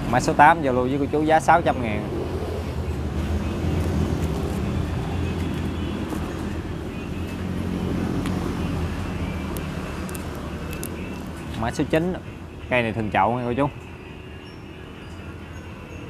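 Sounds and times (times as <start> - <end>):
vehicle engine droning: 0.0 - 13.2.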